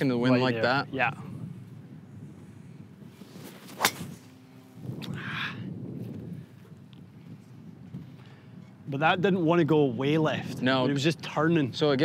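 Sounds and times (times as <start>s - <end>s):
golf ball struck by driver: 3.6s - 4.3s.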